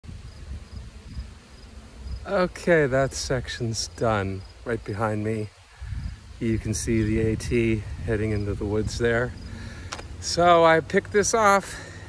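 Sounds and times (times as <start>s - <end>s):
insects chirping: 0.1s - 12.0s
low microphone rumble: 5.8s - 10.4s.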